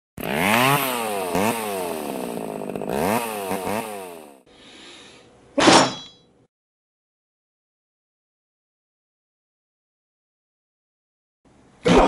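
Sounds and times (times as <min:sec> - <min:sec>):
chainsaw engine revving: 0:00.2 - 0:04.5.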